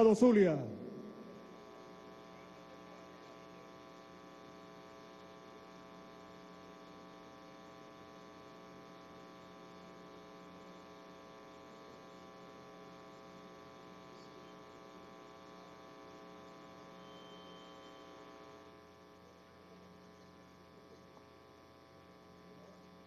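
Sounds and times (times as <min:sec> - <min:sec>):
faint buzzy mains hum: 0:00.0 - 0:23.0.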